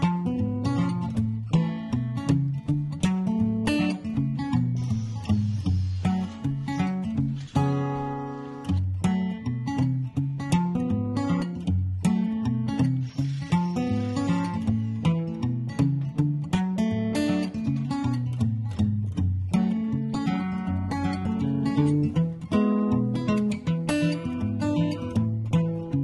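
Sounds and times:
acoustic guitar music: 0.0 - 26.0.

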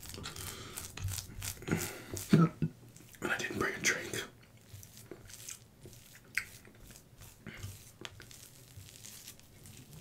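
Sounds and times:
fingers squishing sticky cheese: 4.4 - 10.0.

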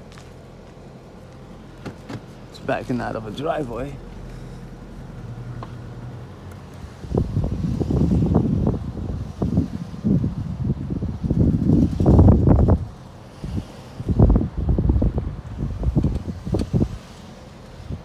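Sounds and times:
wind buffeting microphone: 1.7 - 18.0.

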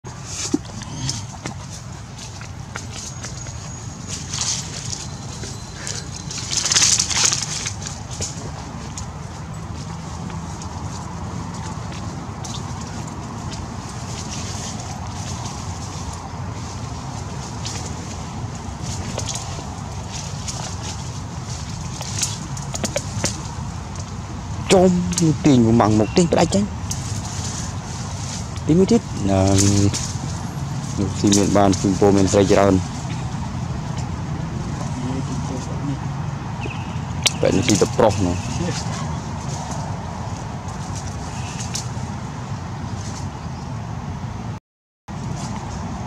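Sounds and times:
rustling bursts: 0.1 - 35.8.

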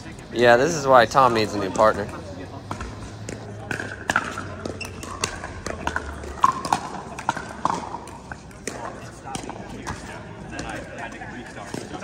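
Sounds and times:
faint voices: 0.0 - 12.0
ball bouncing on court: 2.7 - 12.0.

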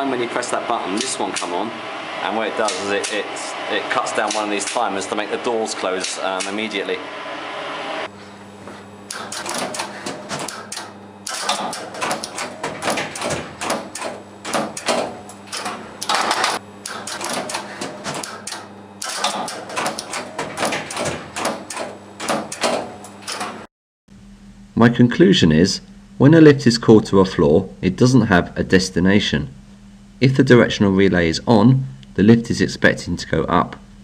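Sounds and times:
low electrical hum: 0.0 - 34.0
relays clicking and clacking: 4.2 - 4.9, 9.1 - 23.7.

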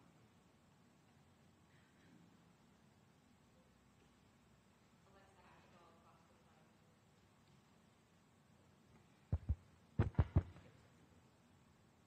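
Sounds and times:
faint room hum: 0.0 - 12.0
microphone handling thumps: 9.3 - 10.6.

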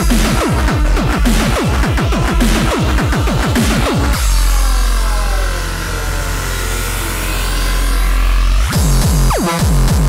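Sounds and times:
deep bass drone: 0.0 - 10.0.

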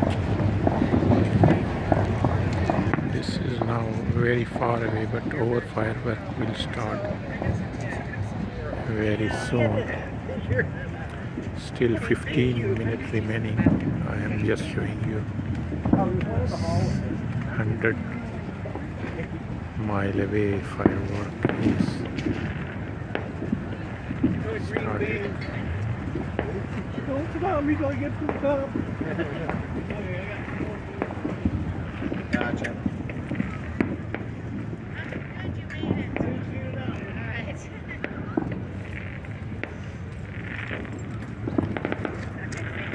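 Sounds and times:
low background noise: 0.0 - 42.9
low rumble: 0.0 - 42.9
people chatting: 0.8 - 22.1, 23.6 - 32.9, 35.0 - 38.8.

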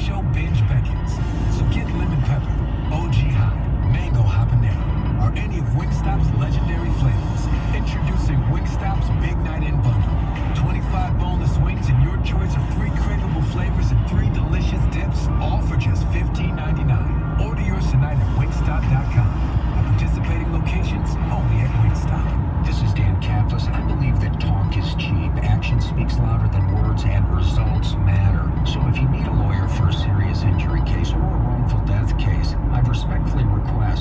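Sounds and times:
engine and road noise in cab: 0.0 - 34.0
radio playing: 0.0 - 34.0.

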